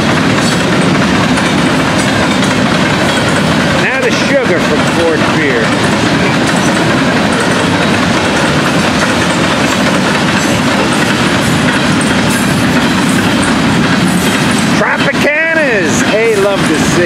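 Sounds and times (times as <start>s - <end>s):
steel wheels on rails: 0.0s - 17.0s.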